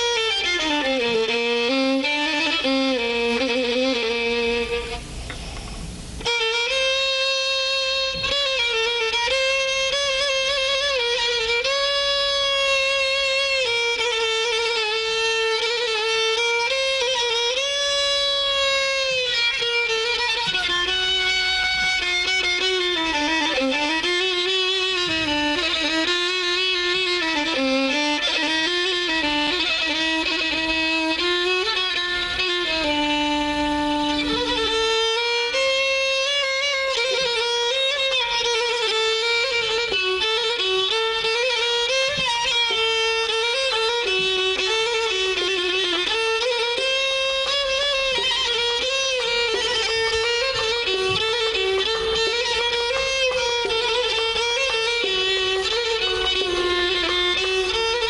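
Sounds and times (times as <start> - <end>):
solo violin improvisation: 0.0 - 58.0.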